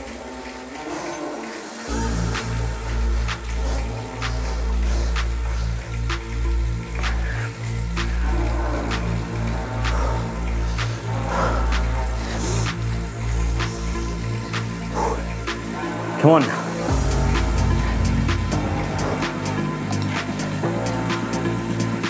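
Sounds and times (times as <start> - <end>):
electronic workout music: 0.0 - 22.0
heavy bass beat: 1.9 - 15.8, 16.7 - 22.0.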